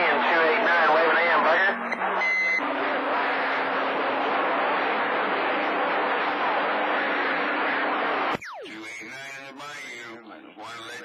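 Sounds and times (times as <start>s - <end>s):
radio static hiss: 0.0s - 11.0s
short radio beep: 1.7s - 2.6s.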